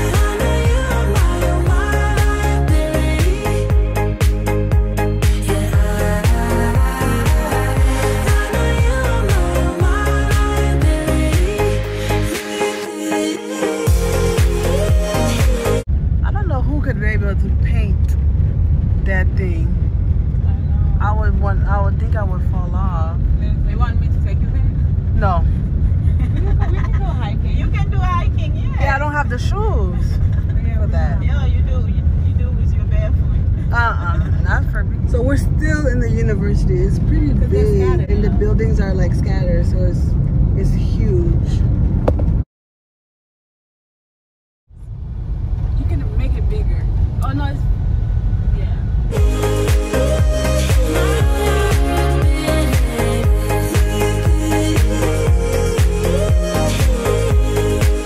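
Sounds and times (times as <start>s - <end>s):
car rumble from inside cabin: 0.0s - 11.8s, 13.9s - 42.4s, 44.8s - 58.0s
person speaking: 33.7s - 40.0s.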